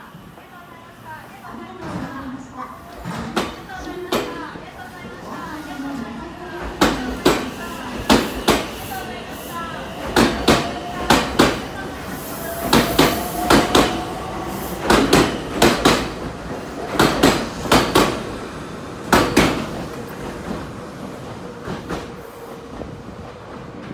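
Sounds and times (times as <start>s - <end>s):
train wheels clacking over rail joints: 6.6s - 8.8s, 10.0s - 11.6s, 14.8s - 18.3s, 19.1s - 20.0s.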